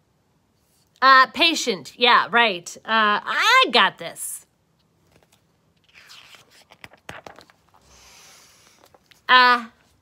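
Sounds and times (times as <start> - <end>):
paper pages rustling: 4.9 - 7.9.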